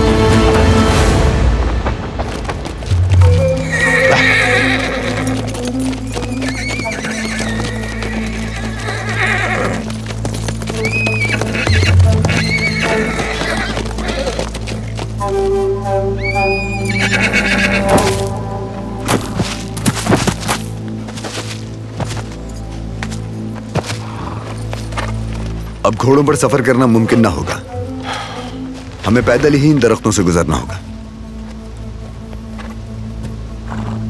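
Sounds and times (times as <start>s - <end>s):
dramatic score with low drone: 0.0s - 6.5s
horse hoofbeats: 0.0s - 30.2s, 31.3s - 34.0s
horses neighing: 3.2s - 15.1s, 16.2s - 18.4s, 23.7s - 25.1s.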